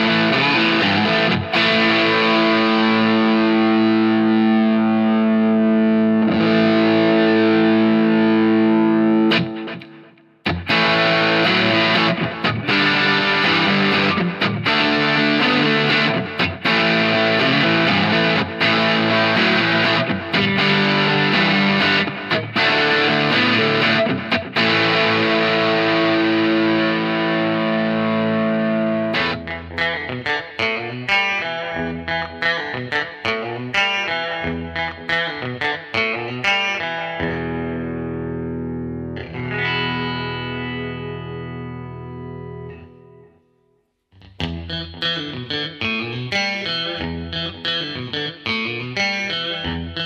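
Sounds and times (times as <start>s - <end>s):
distorted electric guitar: 0.0s - 43.4s, 44.2s - 50.0s.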